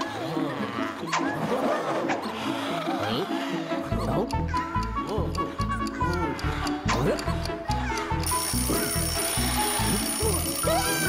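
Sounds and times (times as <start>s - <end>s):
cartoon background music: 0.0s - 11.0s.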